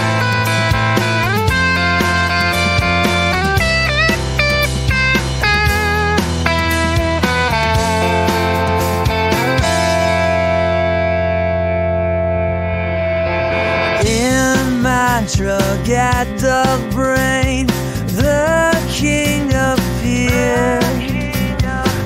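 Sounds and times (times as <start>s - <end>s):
band playing instrumental music: 0.0s - 11.8s, 12.6s - 22.0s
guitar lead with bent notes: 0.0s - 22.0s.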